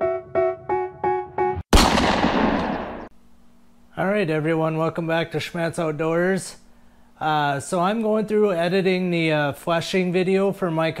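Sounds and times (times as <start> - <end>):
loud explosive burst: 1.7 - 3.1
faint steady hum: 3.0 - 11.0.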